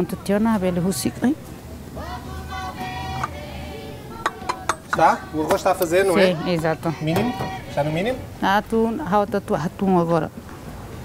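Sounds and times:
utensils clinking against dishes: 0:04.2 - 0:05.9.

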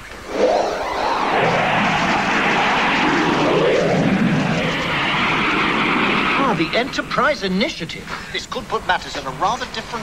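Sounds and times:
whooshing sound effect: 0:00.2 - 0:07.8.

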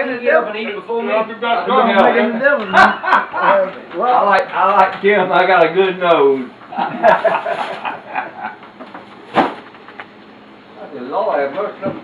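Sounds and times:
laughter: 0:02.6 - 0:03.8, 0:06.7 - 0:08.7.

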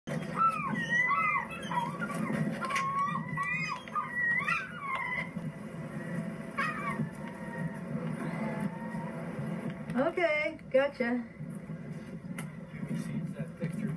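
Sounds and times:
high animal calls: 0:00.1 - 0:05.4
steady low hum: 0:00.1 - 0:13.9.

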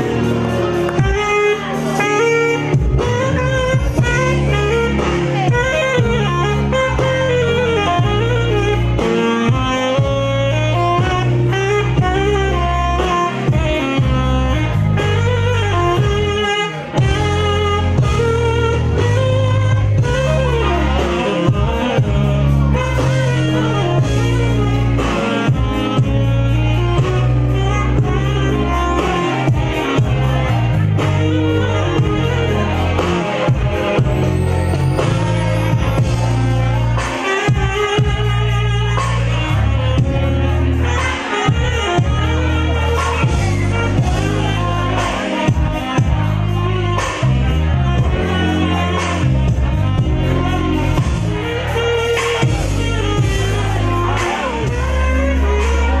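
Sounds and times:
backing music with heavy bass: 0:00.0 - 0:56.0
saxophone melody: 0:00.0 - 0:56.0.

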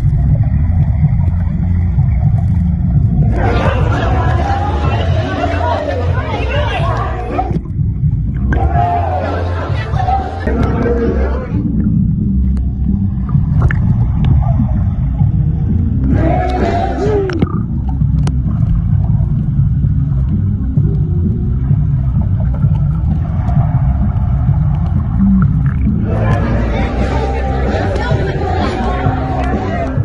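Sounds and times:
muffled underwater water rumble: 0:00.0 - 0:30.0.

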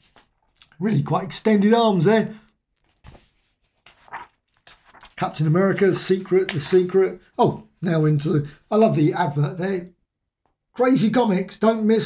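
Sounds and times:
book pages flipping: 0:00.0 - 0:00.8, 0:02.6 - 0:07.0.

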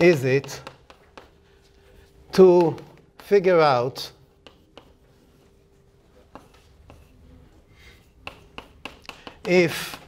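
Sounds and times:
chalk scratching on blackboard: 0:00.0 - 0:02.2, 0:03.2 - 0:10.0
chalk tapping: 0:00.0 - 0:10.0.

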